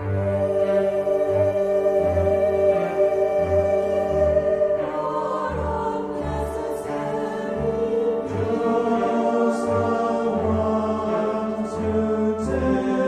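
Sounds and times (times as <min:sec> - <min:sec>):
mixed choir singing: 0:00.0 - 0:13.0.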